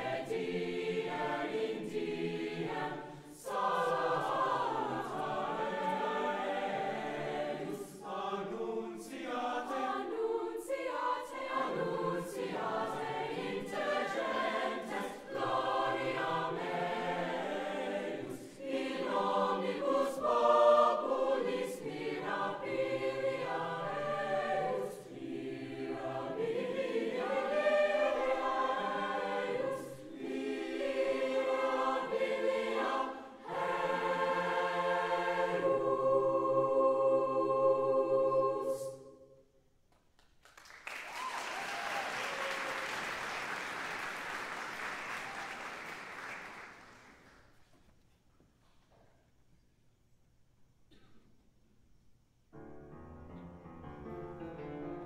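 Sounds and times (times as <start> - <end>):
choir singing: 0.0 - 39.5.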